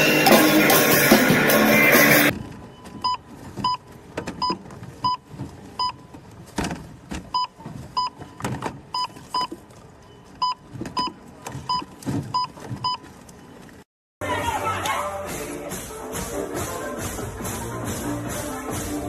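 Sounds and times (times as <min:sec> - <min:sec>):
items knocking and rustling: 0:02.3 - 0:10.0, 0:10.6 - 0:13.8.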